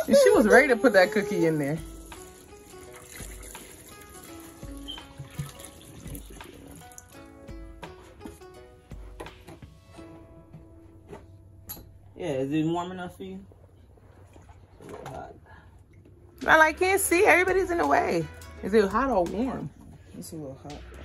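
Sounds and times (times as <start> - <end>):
quiet background music: 0.0 - 21.0
liquid pouring into metal tub: 0.2 - 7.3.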